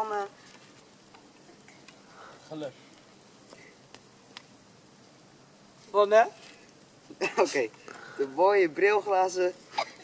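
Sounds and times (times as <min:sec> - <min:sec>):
campfire crackling: 0:00.0 - 0:10.0
low hiss: 0:00.0 - 0:10.0.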